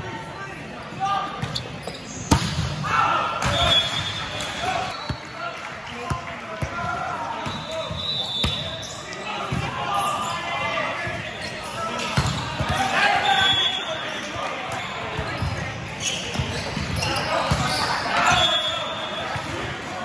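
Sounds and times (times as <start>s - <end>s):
chatter and shouts: 0.0s - 20.0s.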